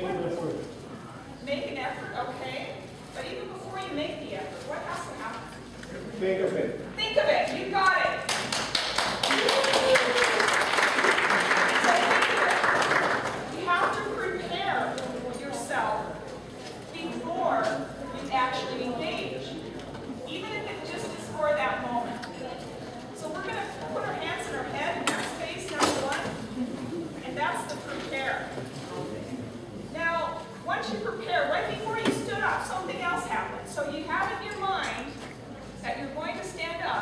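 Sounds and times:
audience applause: 0:08.3 - 0:13.5.

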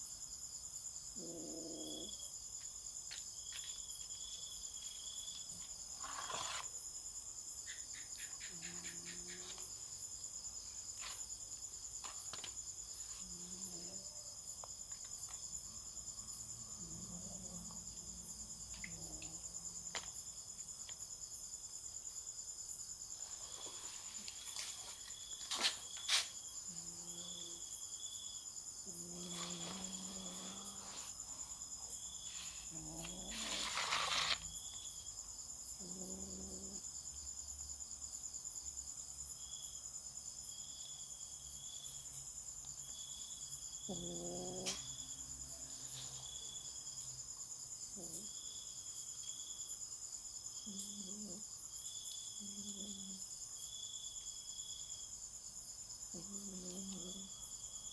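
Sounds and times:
crickets chirring: 0:00.0 - 0:57.9.

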